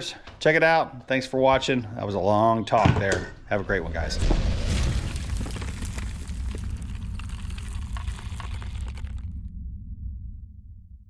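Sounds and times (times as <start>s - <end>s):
crackling rumble: 3.4s - 11.0s.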